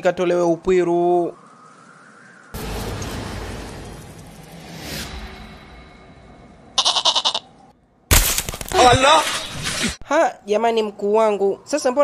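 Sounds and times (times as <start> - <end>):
goat bleat: 6.8 - 7.5.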